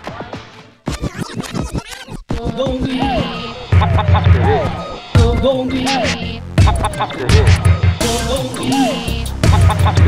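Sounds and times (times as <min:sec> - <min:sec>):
turntable scratching: 0:00.9 - 0:10.0
dance track beat: 0:02.3 - 0:10.0
vocal line over music: 0:02.3 - 0:10.0.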